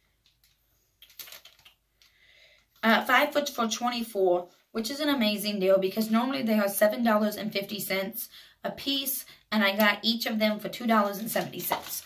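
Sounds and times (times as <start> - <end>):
paper receipt rustling: 0.4 - 1.8, 10.8 - 12.0.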